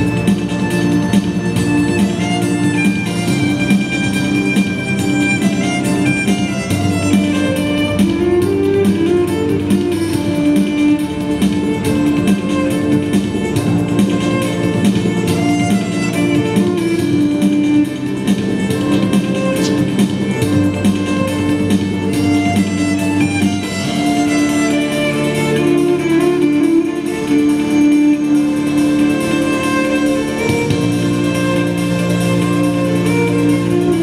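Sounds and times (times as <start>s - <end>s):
electric violin bowing: 0.0s - 34.0s
electronic backing track: 0.0s - 34.0s
steady drum beat: 0.0s - 34.0s.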